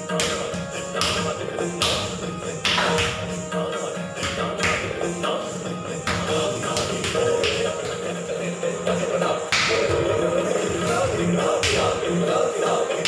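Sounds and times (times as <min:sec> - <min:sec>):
music with sustained tones: 0:00.0 - 0:13.0.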